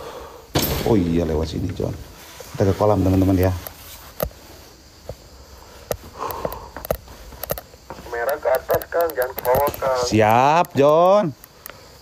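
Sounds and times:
footstep clicks and taps: 5.0s - 11.8s
person talking quietly: 7.9s - 10.1s.

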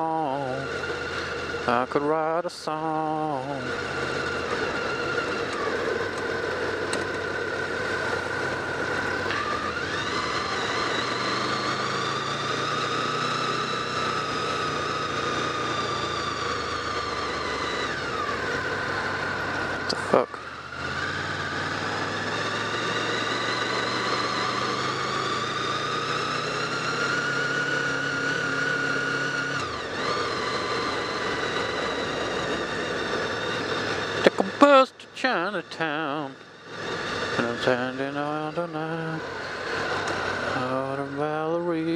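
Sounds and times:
motorcycle engine: 0.0s - 41.9s
rising and falling engine whine: 0.0s - 41.9s.

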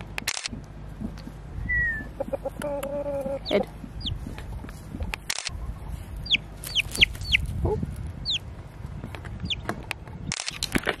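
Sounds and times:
chick peeping: 1.6s - 8.5s, 9.2s - 10.3s.

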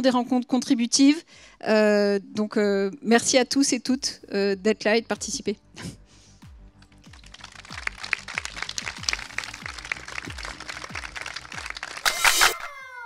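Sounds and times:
background music with low beat: 4.2s - 12.5s
audience applauding: 7.0s - 12.8s.

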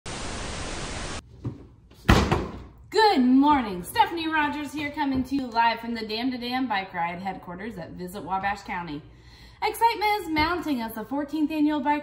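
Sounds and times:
television static hiss: 0.1s - 1.2s.

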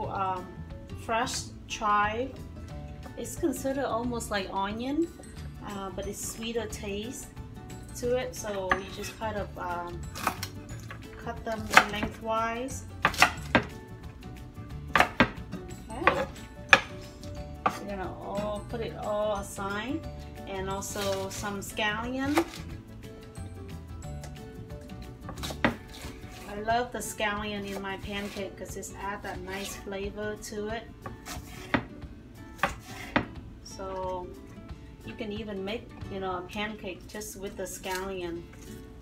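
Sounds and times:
knife chopping on wooden board: 11.6s - 12.2s, 13.0s - 13.8s, 14.9s - 15.4s, 16.0s - 17.8s, 25.2s - 26.5s, 31.0s - 31.9s, 32.6s - 33.4s
knife striking cutting board: 14.9s - 15.4s, 16.0s - 17.8s, 31.2s - 31.9s.

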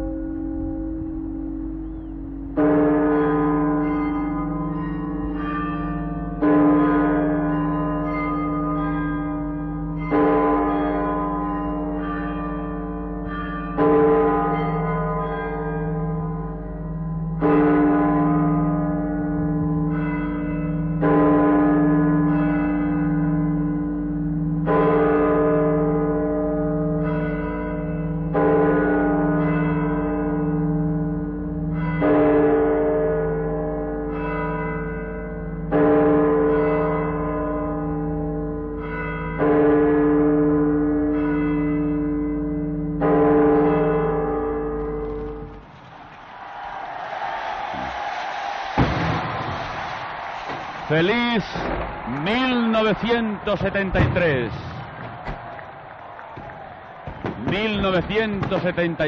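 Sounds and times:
clock tower bell striking: 0.0s - 45.7s.

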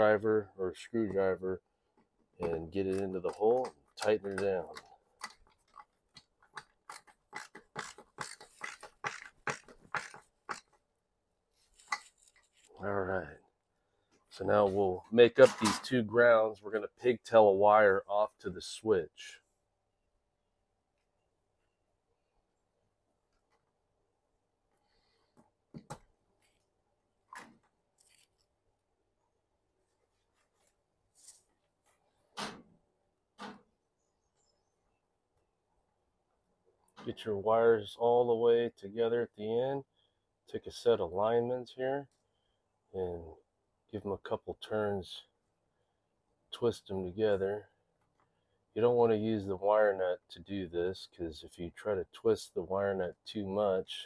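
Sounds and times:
screwdriver clicks and metal scrapes: 2.4s - 10.8s, 11.6s - 12.8s, 27.4s - 28.5s
wires rustling: 11.5s - 12.9s, 27.3s - 28.6s.

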